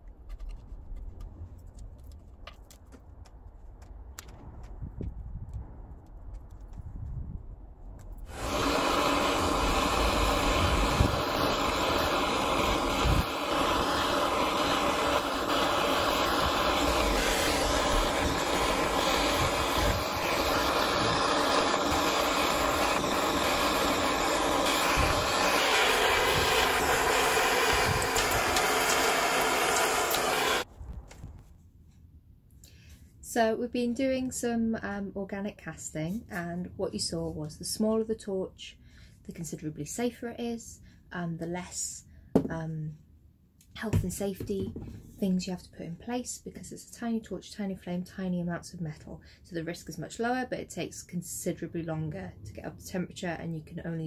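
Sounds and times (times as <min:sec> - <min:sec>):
gas torch flame roaring: 0:08.1 - 0:30.7.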